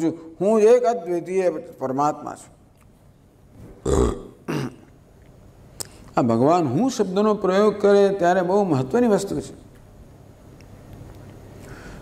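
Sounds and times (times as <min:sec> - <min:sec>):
man's throat sounds: 0:03.7 - 0:05.0.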